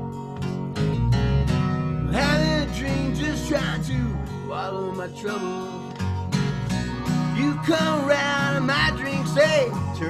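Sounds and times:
steady low bass: 0.0s - 4.5s, 6.1s - 10.0s
strummed acoustic guitars: 0.0s - 10.0s
man singing: 2.1s - 6.0s, 7.3s - 10.0s.

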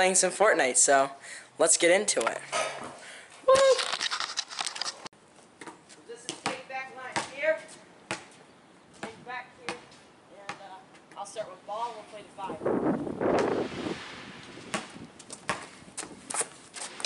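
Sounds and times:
basketball bouncing on concrete: 5.6s - 11.4s, 14.6s - 16.5s.

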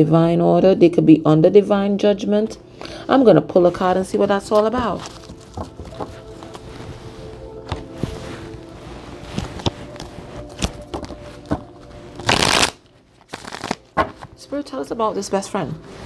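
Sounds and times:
cards being shuffled: 4.5s - 6.7s, 7.7s - 14.4s
cards flicking: 12.2s - 14.3s.

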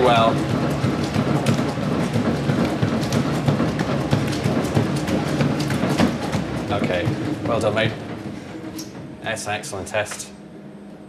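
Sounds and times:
footfalls on treadmill belt: 0.0s - 10.3s
treadmill motor and belt hum: 0.0s - 11.0s.

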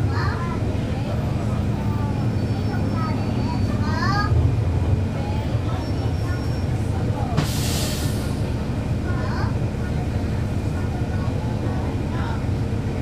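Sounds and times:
bus diesel engine rumbling: 0.0s - 13.0s.

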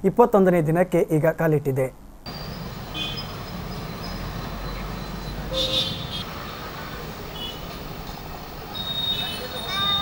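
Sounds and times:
vehicle horn toot: 2.3s - 6.3s, 7.3s - 7.8s, 8.7s - 10.0s
street traffic noise: 2.3s - 10.0s.

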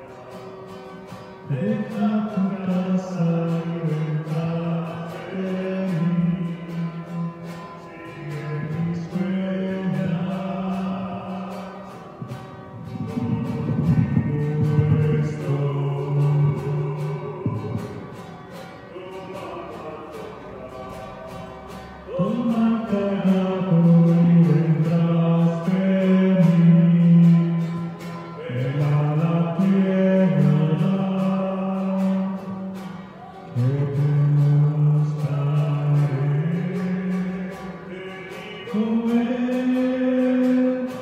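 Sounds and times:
hymn singing: 0.0s - 41.0s
instrumental accompaniment with steady beat: 0.0s - 41.0s.

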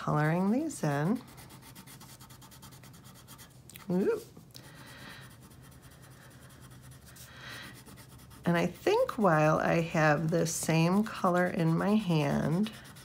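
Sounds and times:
wax crayon scratching on paper: 0.0s - 3.6s, 5.2s - 13.0s.

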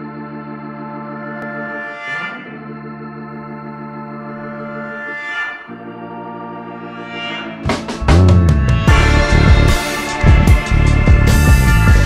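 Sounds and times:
organ sustained chords: 0.0s - 12.0s.

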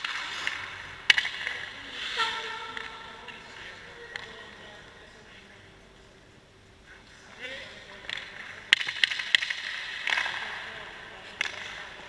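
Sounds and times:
skate blades scraping ice: 0.0s - 3.8s.

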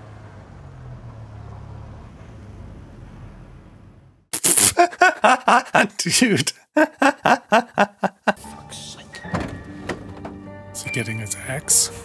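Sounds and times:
man laughing loudly: 4.4s - 8.9s.

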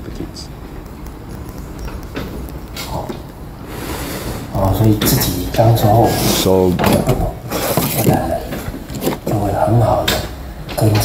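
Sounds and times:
man lecturing: 4.5s - 7.2s.

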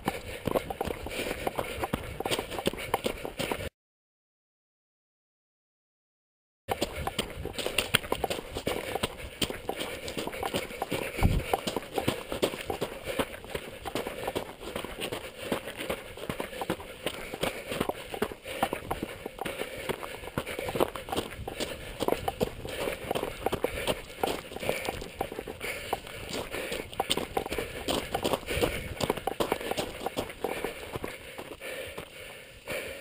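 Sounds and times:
footsteps crunching on gravel: 0.0s - 3.6s, 6.7s - 32.3s.

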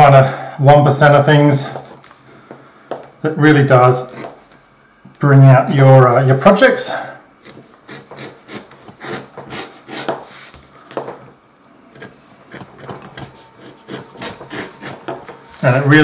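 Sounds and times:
edge beveler scraping leather: 4.0s - 4.5s, 7.4s - 10.6s, 11.9s - 16.0s.

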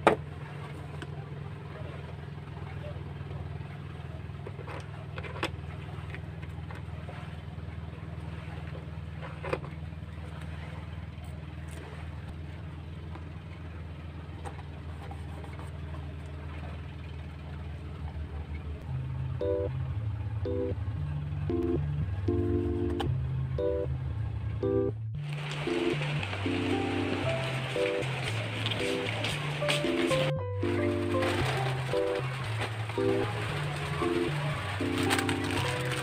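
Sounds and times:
steady low hum: 0.0s - 35.6s.

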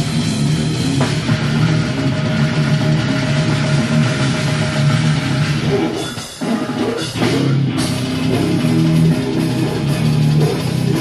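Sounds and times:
distorted guitar riffing: 0.0s - 11.0s
drum kit: 0.0s - 11.0s.

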